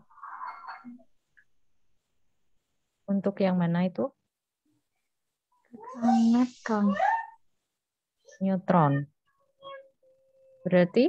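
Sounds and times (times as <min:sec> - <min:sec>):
woman speaking: 0:03.1 - 0:04.2, 0:05.8 - 0:07.4, 0:08.3 - 0:09.2, 0:10.6 - 0:11.0
person speaking: 0:05.8 - 0:07.4.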